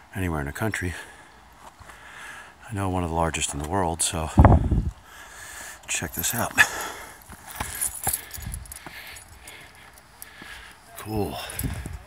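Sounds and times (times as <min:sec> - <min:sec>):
footsteps on metal grating: 0:06.1 - 0:12.0.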